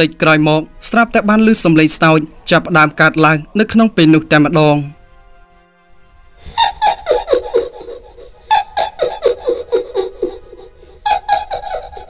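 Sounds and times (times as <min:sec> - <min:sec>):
faint music drone: 0:00.0 - 0:12.0
high cackling laugh: 0:06.4 - 0:12.0.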